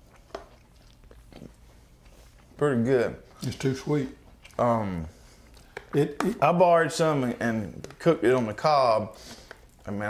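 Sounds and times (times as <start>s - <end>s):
chewing mouth sounds: 0.0s - 2.6s, 4.1s - 6.0s.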